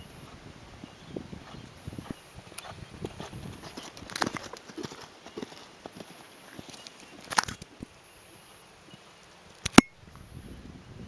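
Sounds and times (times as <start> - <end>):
horse hoofbeats on sand: 1.4 - 7.2.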